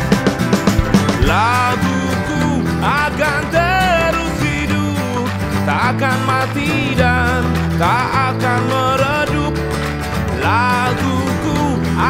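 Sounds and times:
acoustic guitar: 0.0 - 12.0
bass line: 0.0 - 12.0
man singing: 0.7 - 12.0.

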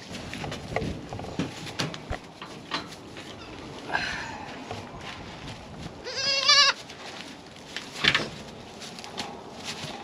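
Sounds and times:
goat bleating: 6.0 - 6.8.

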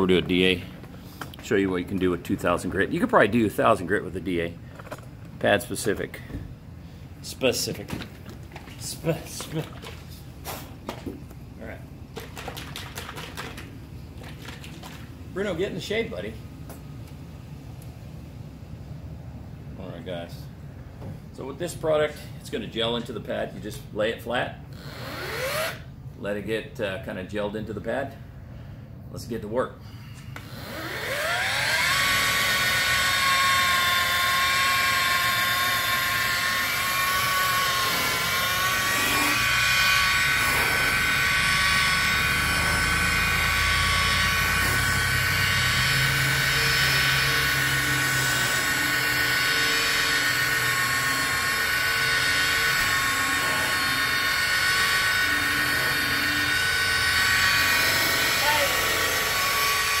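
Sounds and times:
rotary polisher whining: 24.8 - 25.9, 30.3 - 60.0.

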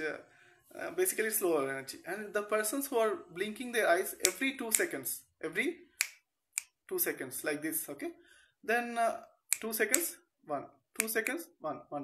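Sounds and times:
person speaking: 0.0 - 12.0
finger snaps: 6.0 - 6.8, 11.0 - 11.4.

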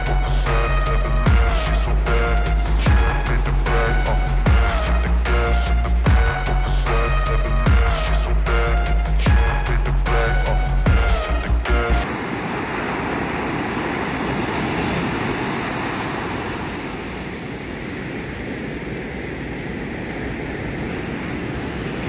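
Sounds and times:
waves breaking on beach: 12.0 - 22.0
wind on microphone: 12.1 - 22.0.

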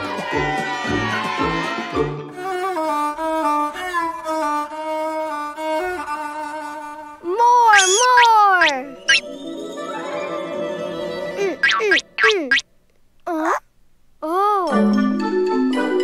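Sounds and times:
string music with violin melody: 0.0 - 7.6
cartoon vocal exclamation: 7.4 - 8.9, 11.4 - 12.6, 13.3 - 13.6.

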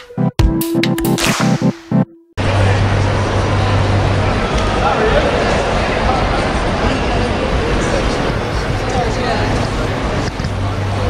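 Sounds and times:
busy indoor concourse din: 2.4 - 11.0.

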